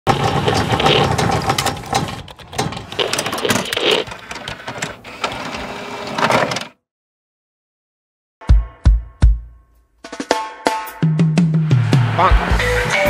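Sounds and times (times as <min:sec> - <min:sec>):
rapid mechanical clicking and whirring: 0:00.1 - 0:06.8.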